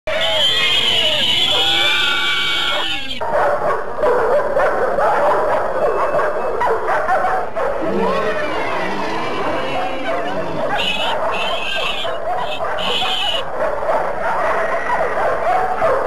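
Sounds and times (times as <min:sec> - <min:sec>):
cartoon dogs barking: 0:00.1 - 0:16.0
dogs yapping and whining: 0:00.3 - 0:16.0.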